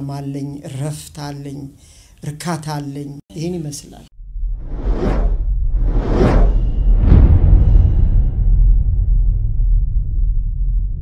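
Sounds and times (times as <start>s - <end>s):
deep rumble: 4.1s - 11.0s
whoosh sound effects: 4.6s - 8.4s.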